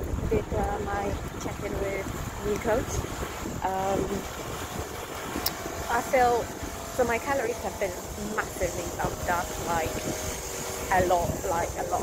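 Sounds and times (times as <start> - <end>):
wind buffeting microphone: 0.0 - 12.0
woman speaking: 0.2 - 3.0, 3.6 - 4.3, 5.9 - 6.4, 7.0 - 9.9, 10.9 - 12.0.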